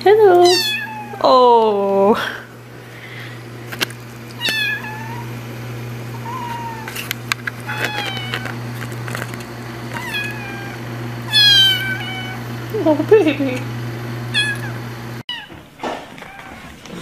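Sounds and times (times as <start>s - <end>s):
cat meowing: 0.4s - 1.2s, 4.4s - 5.3s, 6.2s - 6.9s, 7.6s - 8.4s, 10.0s - 12.4s, 14.3s - 15.6s.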